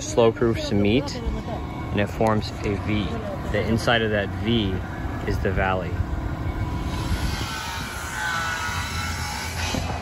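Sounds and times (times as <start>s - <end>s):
outdoor background rumble with hiss: 0.0s - 10.0s.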